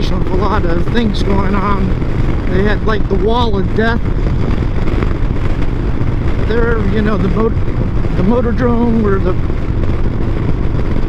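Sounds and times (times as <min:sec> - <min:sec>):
motorcycle engine running: 0:00.0 - 0:11.0
wind noise on microphone: 0:00.0 - 0:11.0.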